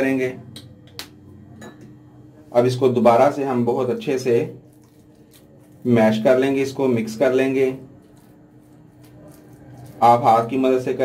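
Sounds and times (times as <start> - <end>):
spatula stirring wet paste: 4.6 - 11.0.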